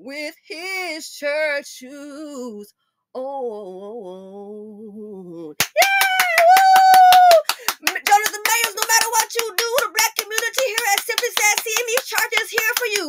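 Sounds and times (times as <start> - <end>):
woman singing a cappella: 0.0 - 13.0
high held vocal cry: 5.6 - 13.0
rapid clapping: 5.6 - 13.0
voices: 5.7 - 13.0.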